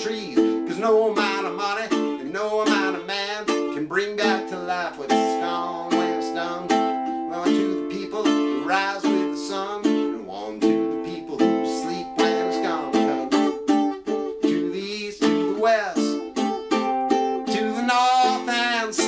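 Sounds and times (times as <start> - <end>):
ukulele strummed reggae rhythm: 0.0 - 19.0.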